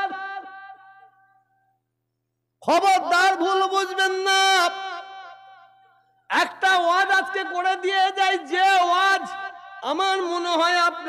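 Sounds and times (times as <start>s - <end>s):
man chanting: 0.0s - 1.1s, 2.6s - 5.6s, 6.3s - 11.0s.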